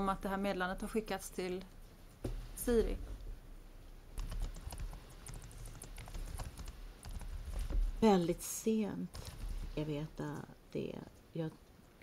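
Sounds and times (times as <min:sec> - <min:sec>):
low steady hum: 0:00.0 - 0:12.0
computer keyboard typing: 0:04.2 - 0:07.9, 0:09.1 - 0:09.8.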